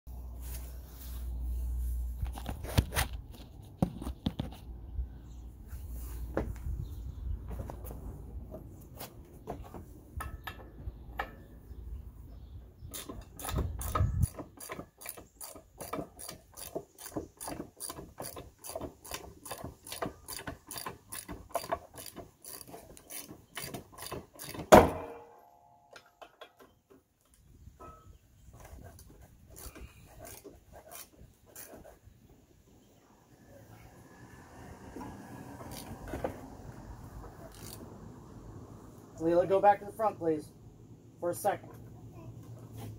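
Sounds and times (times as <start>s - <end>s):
ratchet wrench clicking: 13.0s - 23.3s, 35.7s - 36.0s, 37.4s - 37.8s
loud metal clank: 24.7s - 25.6s.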